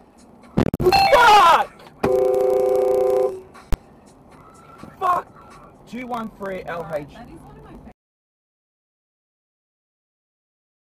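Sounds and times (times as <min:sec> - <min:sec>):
two-tone car horn blast: 0:02.0 - 0:03.6.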